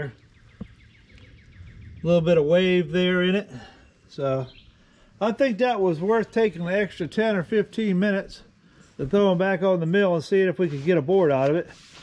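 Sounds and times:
faint bird chirping: 0.0 - 6.6, 8.3 - 9.4.

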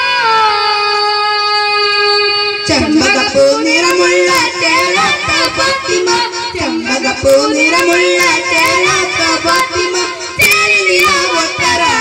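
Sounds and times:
boys singing devotional song: 0.0 - 12.0.

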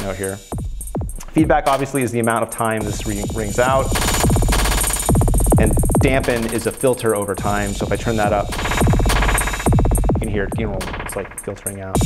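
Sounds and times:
deep bass: 0.0 - 12.0
drum beat with echo delay: 0.0 - 12.0.

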